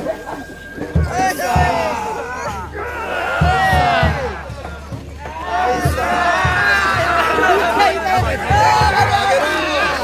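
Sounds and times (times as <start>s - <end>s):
group of people shouting: 1.1s - 10.0s.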